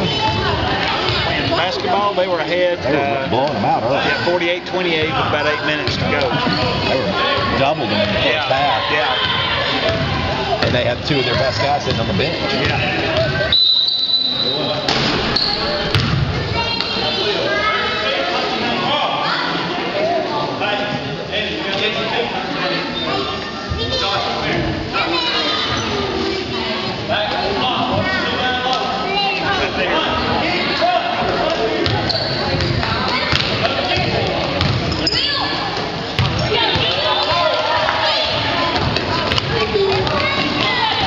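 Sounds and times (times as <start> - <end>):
faint echoing voices: 0.0 - 41.0
spectators chattering and shouting: 0.0 - 41.0
sneaker squeaks: 5.8 - 7.0, 12.6 - 17.0, 31.8 - 35.6, 36.2 - 37.4
basketball bouncing on wooden floor: 31.8 - 34.9
basketball bouncing on hardwood floor: 33.3 - 34.8.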